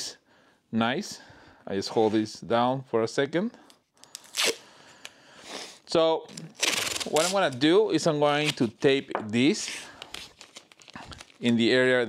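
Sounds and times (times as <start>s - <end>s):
scratchy rustle of tape: 6.4s - 7.7s.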